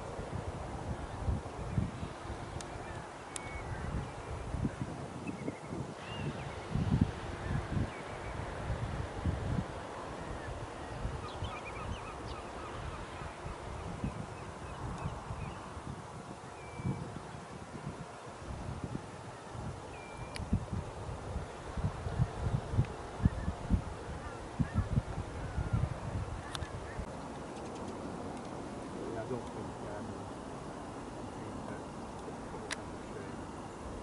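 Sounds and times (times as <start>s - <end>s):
wind buffeting microphone: 0.0s - 34.0s
bird calls: 2.7s - 6.8s, 10.2s - 15.7s.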